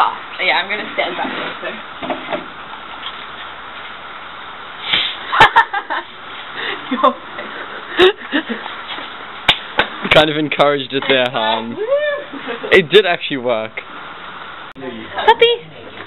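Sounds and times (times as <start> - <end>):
fizzy drink spraying and hissing: 4.8 - 5.4
people laughing: 12.0 - 12.9.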